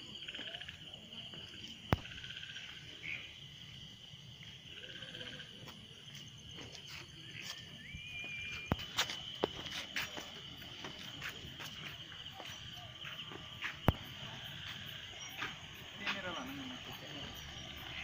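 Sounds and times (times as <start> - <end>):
crickets chirping: 0.0 - 18.0.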